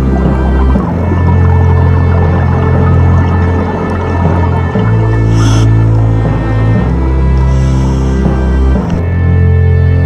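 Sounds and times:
low bass notes: 0:00.0 - 0:10.0
held tones: 0:05.3 - 0:05.8, 0:07.4 - 0:08.3.

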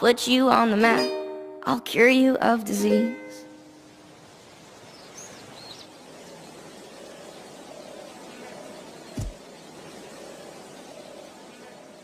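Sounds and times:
faint ambient hiss: 0:00.0 - 0:12.0
low thump: 0:09.2 - 0:09.4.

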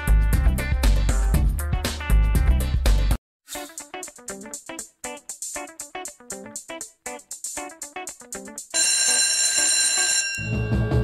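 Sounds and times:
music with drum beat: 0:00.0 - 0:08.8
electric bell ringing: 0:08.8 - 0:11.0.

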